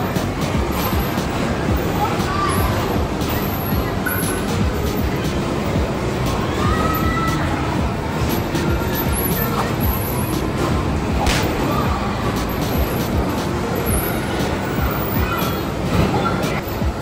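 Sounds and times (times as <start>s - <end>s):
background music: 0.0s - 17.0s
bumper cars rumbling: 0.0s - 17.0s.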